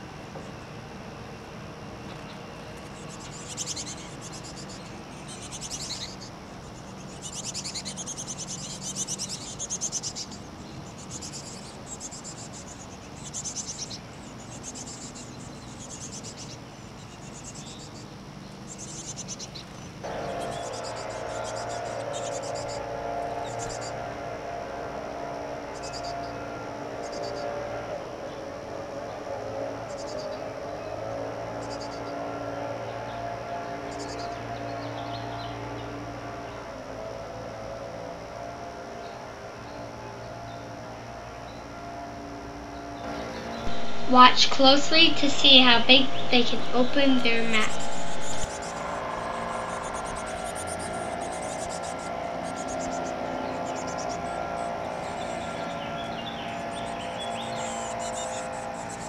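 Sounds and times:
steady low hum: 0.0s - 59.0s
nestlings begging peeps: 2.0s - 24.1s, 25.6s - 27.6s, 29.8s - 32.2s, 33.9s - 35.9s, 43.0s - 59.0s.

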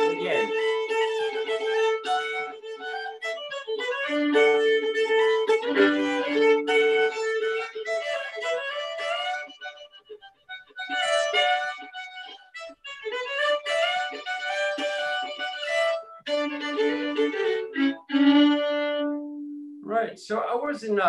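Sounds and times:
solo violin fiddle tune: 0.0s - 19.8s.

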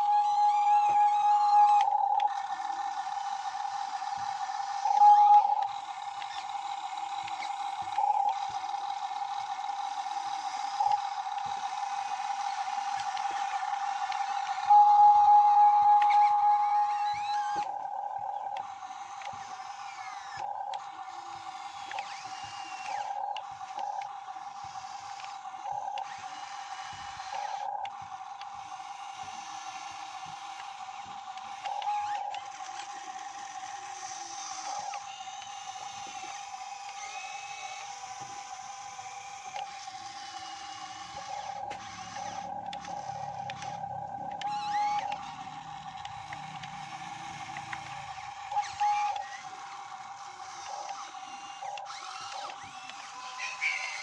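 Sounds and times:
electric motors whining: 0.0s - 54.0s.

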